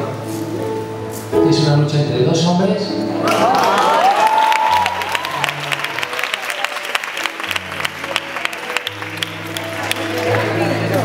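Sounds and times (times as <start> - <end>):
slow low instrumental notes: 0.0 - 3.5
audience clapping: 3.2 - 11.0.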